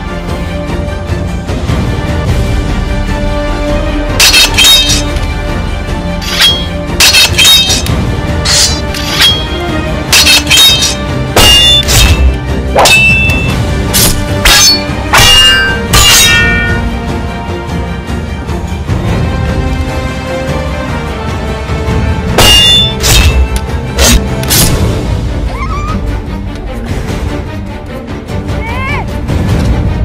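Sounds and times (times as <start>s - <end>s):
background music: 0.0s - 30.0s
swords clashing: 4.2s - 5.3s, 6.2s - 16.8s, 22.4s - 24.8s.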